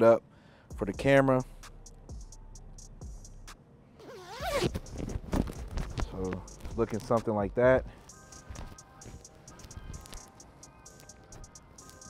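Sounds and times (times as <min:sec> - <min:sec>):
jacket zipper pulled up: 0:04.0 - 0:06.8.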